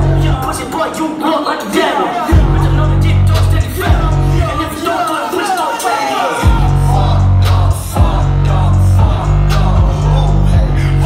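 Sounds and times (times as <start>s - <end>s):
heavy deep bass: 0.0s - 1.1s, 2.2s - 5.0s, 6.4s - 11.0s
live hip-hop music: 0.0s - 11.0s.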